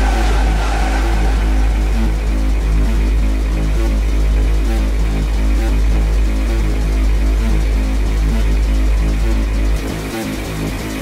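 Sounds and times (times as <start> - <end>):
gliding synth tone: 0.0 - 5.0
dark techno music: 0.0 - 11.0.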